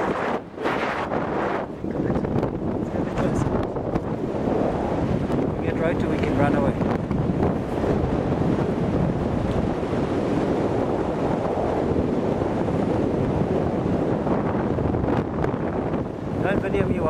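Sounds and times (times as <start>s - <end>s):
wind rushing over microphone: 0.0s - 17.0s.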